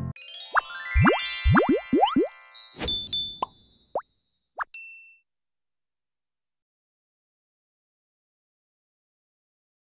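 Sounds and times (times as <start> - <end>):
short bright ding: 2.8 - 3.7.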